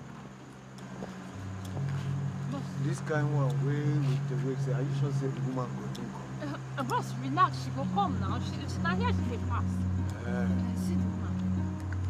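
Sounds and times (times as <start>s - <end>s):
engine humming: 0.0s - 12.0s.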